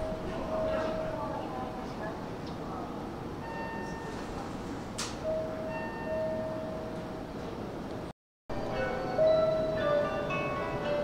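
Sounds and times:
electronic chime melody: 8.6 - 11.0.

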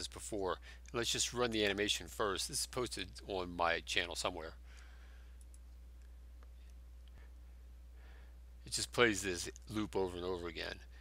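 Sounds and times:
low electrical hum: 0.0 - 11.0
faint clicks: 4.7 - 7.2.

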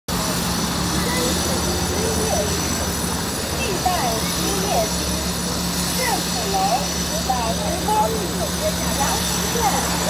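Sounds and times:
faint indistinct voices: 0.1 - 10.0
traffic rumble: 0.1 - 10.0.

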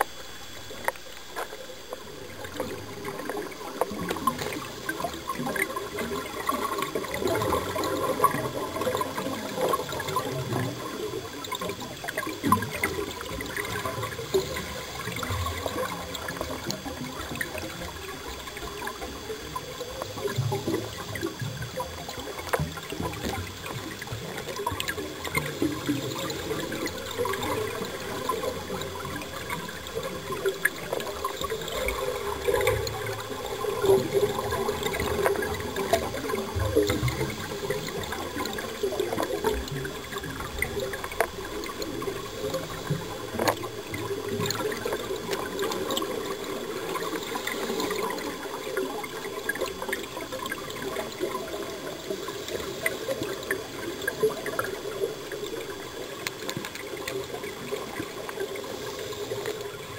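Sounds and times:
underwater bubbling and gurgling: 0.0 - 59.9.

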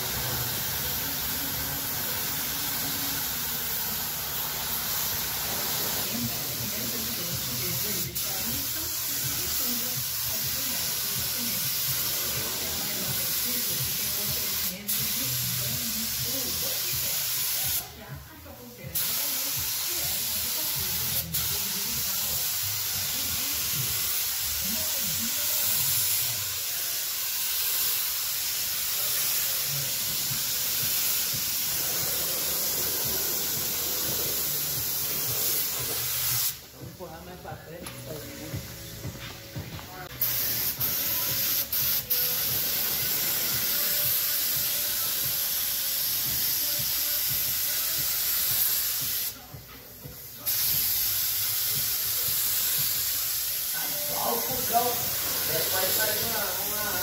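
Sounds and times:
paint spray gun hissing: 0.0 - 18.0, 18.6 - 36.9, 40.0 - 57.0.

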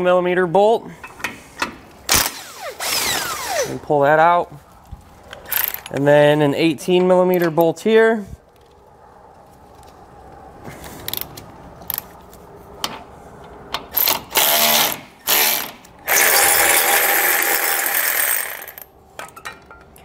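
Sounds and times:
electric ratchet spinning: 2.1 - 3.7, 14.0 - 18.9.

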